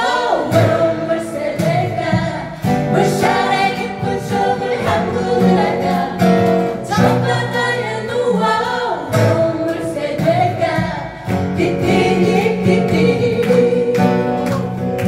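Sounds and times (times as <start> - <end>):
acoustic guitars strumming: 0.0 - 15.0
group singing in harmony: 0.0 - 15.0.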